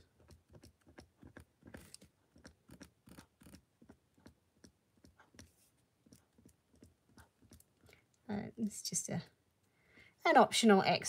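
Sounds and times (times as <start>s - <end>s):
marker pen tapping on paper: 0.1s - 7.7s.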